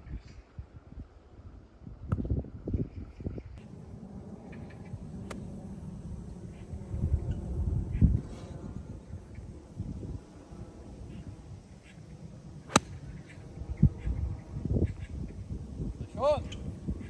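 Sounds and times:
wind buffeting microphone: 0:00.0 - 0:17.0
low steady hum: 0:03.3 - 0:17.0.

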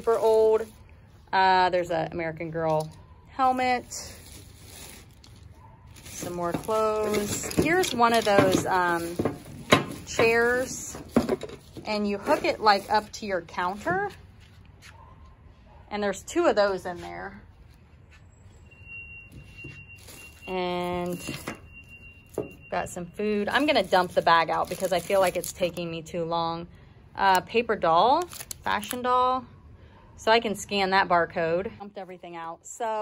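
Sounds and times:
plastic bag rummaged: 0:00.0 - 0:00.8, 0:03.4 - 0:14.6, 0:19.4 - 0:21.7, 0:23.4 - 0:25.8.

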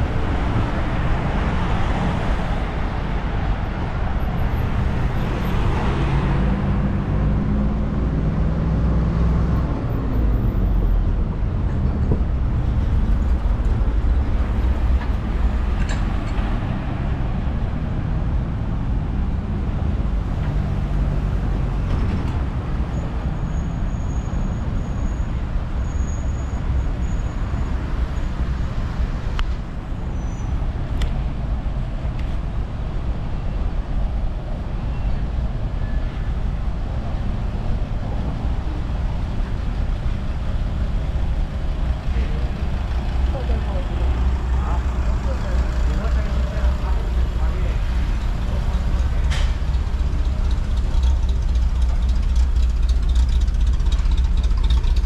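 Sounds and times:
street traffic rumble: 0:00.0 - 0:55.0.

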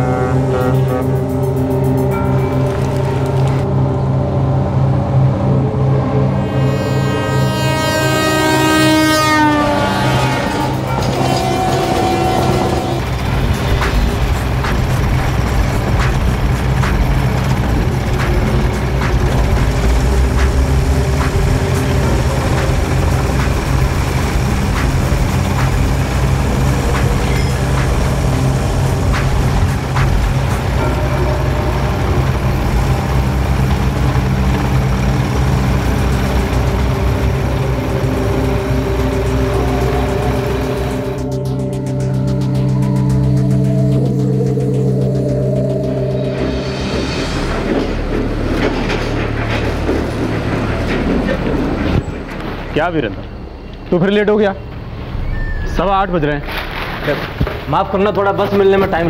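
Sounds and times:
locomotive horn: 0:00.0 - 0:03.8, 0:05.9 - 0:16.4, 0:17.1 - 0:41.8
steady low rumble: 0:13.0 - 0:59.0
music with a regular beat: 0:13.4 - 0:31.0.

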